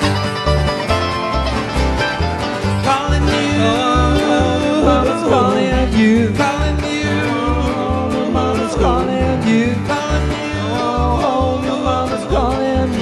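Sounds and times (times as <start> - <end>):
mandolin: 0.0 - 13.0
strummed acoustic guitars: 0.0 - 13.0
upright bass notes: 0.0 - 13.0
person singing: 2.8 - 13.0.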